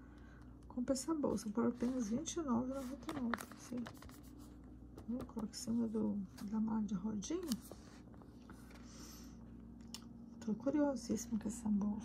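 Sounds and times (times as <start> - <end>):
paper rustle: 1.3 - 4.6.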